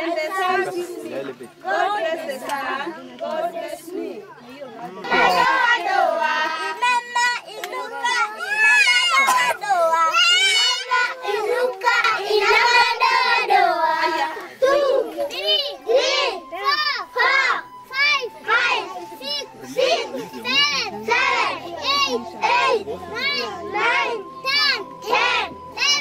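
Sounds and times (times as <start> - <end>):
children singing in unison: 0.0 - 26.0
children chanting numbers: 1.8 - 26.0.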